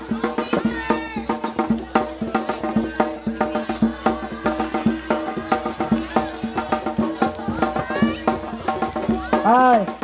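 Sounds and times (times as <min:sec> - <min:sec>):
struck pitched percussion: 0:00.0 - 0:10.0.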